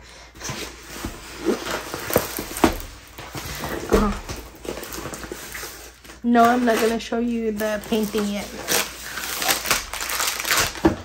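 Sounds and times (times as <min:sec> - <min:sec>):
paper rustling and crinkling: 0:00.2 - 0:11.0.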